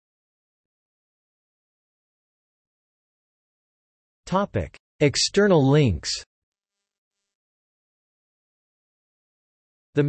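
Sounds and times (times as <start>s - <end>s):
synthesized speech voice: 4.3s - 6.2s.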